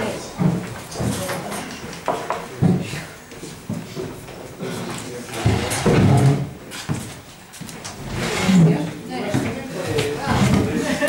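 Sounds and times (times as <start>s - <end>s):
people talking indistinctly: 8.0s - 11.0s.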